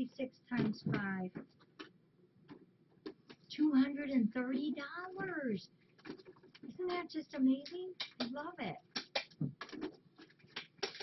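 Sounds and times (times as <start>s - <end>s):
woman speaking: 0.0s - 1.4s, 3.5s - 5.8s, 6.6s - 8.9s.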